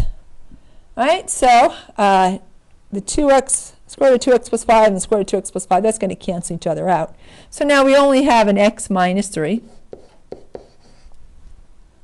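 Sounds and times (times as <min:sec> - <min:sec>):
pen scratching on tablet: 0:09.6 - 0:11.2
pen tapping on tablet: 0:09.9 - 0:10.8.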